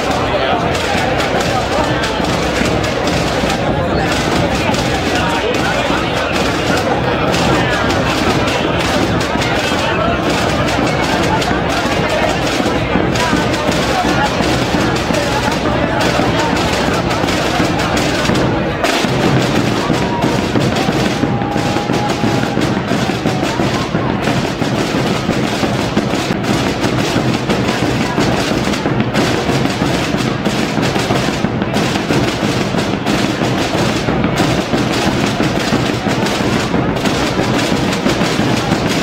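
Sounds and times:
snare and bass drums rolling: 0.0 - 39.0.

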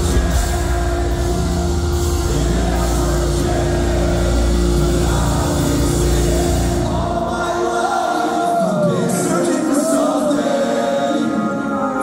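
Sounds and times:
metal band playing live: 0.0 - 10.2.

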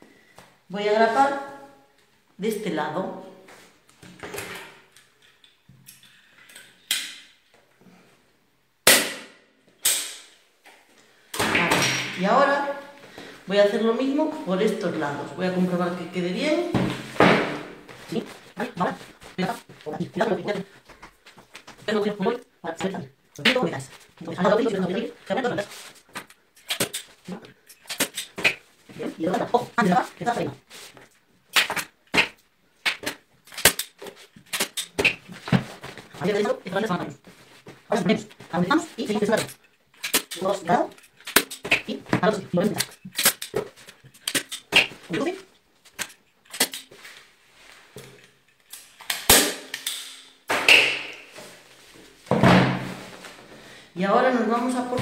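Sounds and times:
person talking: 0.7 - 1.7, 2.4 - 3.5, 11.4 - 17.0, 17.9 - 20.8, 21.8 - 25.9, 27.2 - 27.6, 28.9 - 30.7, 36.1 - 39.6, 40.2 - 41.0, 41.7 - 43.0, 45.0 - 45.5, 54.0 - 55.0
staple gun clicks and snaps: 48.7 - 50.3.

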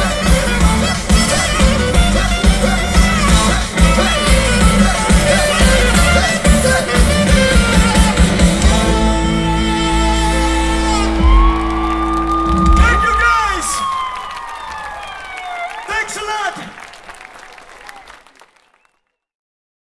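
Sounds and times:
live band chord: 0.0 - 13.0.

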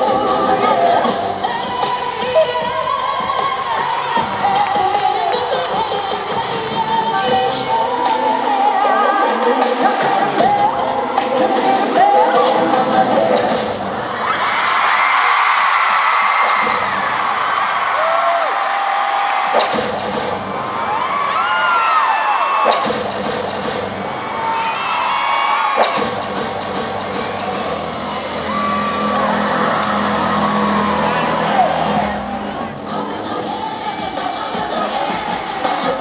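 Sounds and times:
steady bass line: 0.0 - 1.9, 26.0 - 35.4
crowd screaming and whooping: 0.0 - 5.5, 6.3 - 36.0
loud pop music: 0.0 - 36.0.

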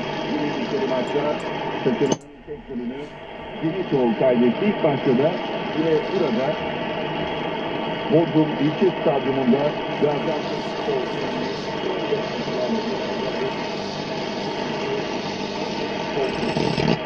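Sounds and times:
radio static hiss: 0.0 - 17.0
person speaking on radio: 8.2 - 17.0.

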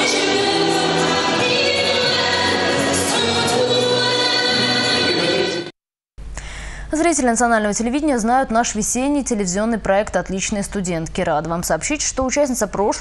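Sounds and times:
choir singing: 0.0 - 5.7.

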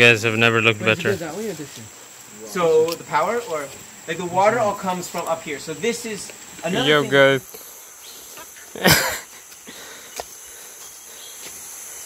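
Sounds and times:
insects chorus: 0.0 - 12.0.

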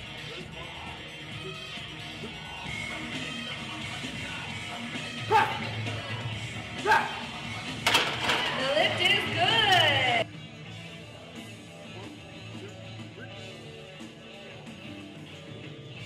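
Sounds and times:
background music: 0.0 - 16.0
people shouting: 5.2 - 5.8, 6.8 - 7.4.

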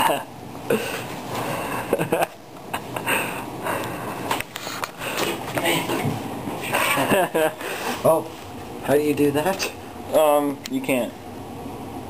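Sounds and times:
breathy laughter: 0.0 - 3.9, 6.7 - 8.0.

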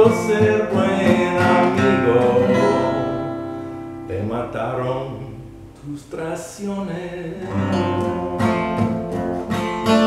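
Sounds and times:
acoustic guitar notes and chord: 0.0 - 6.3, 6.9 - 10.0.

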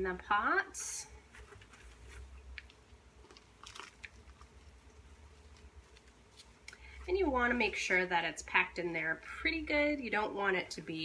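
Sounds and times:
potting mix crunching: 1.2 - 11.0.

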